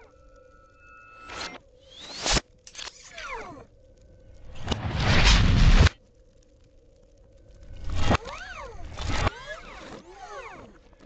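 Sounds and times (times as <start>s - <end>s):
falling mechanical whines: 0.0s - 3.8s, 7.7s - 11.0s.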